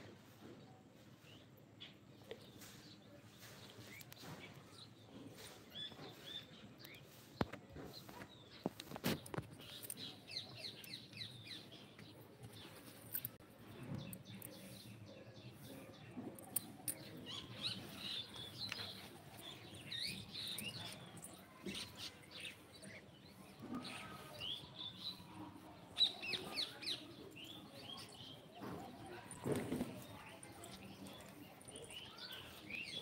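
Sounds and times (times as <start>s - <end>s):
small birds chirping: 0.0s - 33.0s.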